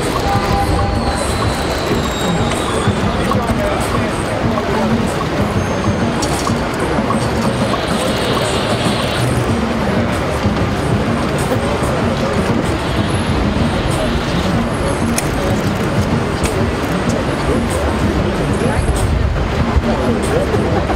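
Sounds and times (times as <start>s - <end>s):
city traffic: 0.0s - 20.9s
crowd talking: 0.0s - 20.9s.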